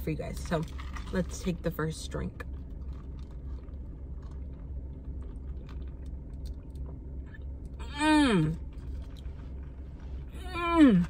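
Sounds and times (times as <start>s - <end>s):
low rumble in a car cabin: 0.0s - 11.0s
person saying mmm: 7.8s - 8.6s.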